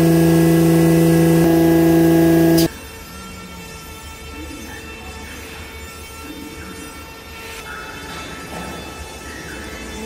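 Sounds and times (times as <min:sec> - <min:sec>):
folding machine mechanical drone: 0:00.0 - 0:02.7
steady machine tones: 0:00.0 - 0:02.7.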